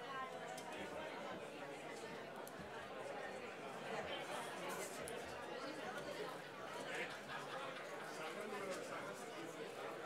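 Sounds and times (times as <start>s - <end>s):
murmur of audience chatter: 0.0s - 10.0s.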